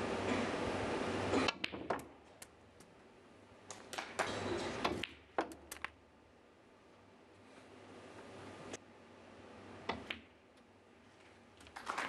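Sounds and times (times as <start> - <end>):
snooker balls clicking: 1.3 - 3.0, 3.6 - 6.1, 9.8 - 10.7.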